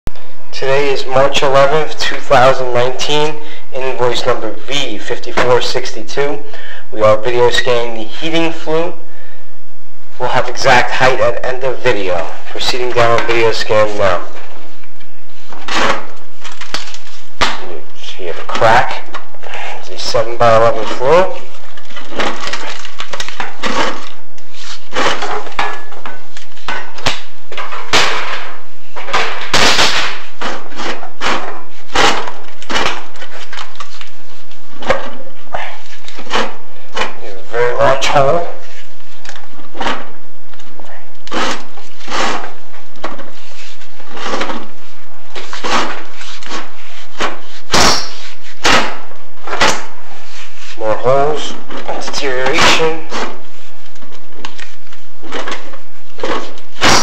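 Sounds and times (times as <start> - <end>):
camera head knocking and scraping: 20.7 - 35.3, 39.1 - 50.0, 51.5 - 57.0.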